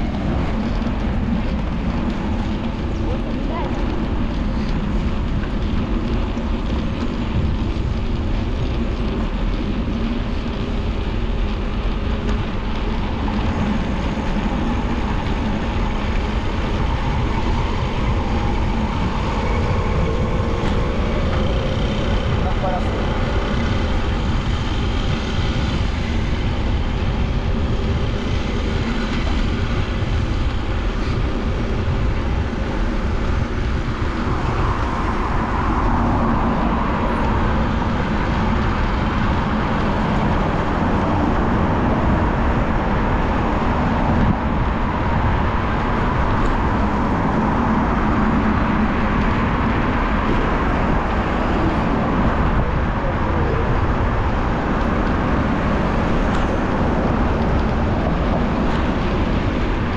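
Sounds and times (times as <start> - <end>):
car traffic hum: 0.0 - 59.9
wind rushing over camera: 0.0 - 59.9.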